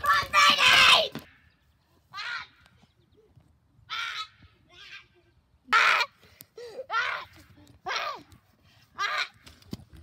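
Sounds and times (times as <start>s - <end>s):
boy shouting: 6.7s - 8.3s.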